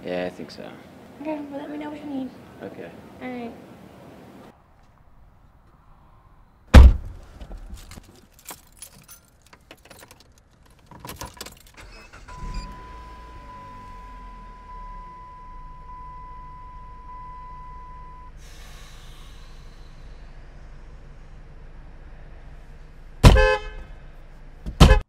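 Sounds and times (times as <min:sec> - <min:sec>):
keys jangling: 0:07.7 - 0:11.8
car engine idling: 0:11.6 - 0:25.0
steady high tone: 0:12.4 - 0:18.4
brief hiss: 0:18.3 - 0:20.4.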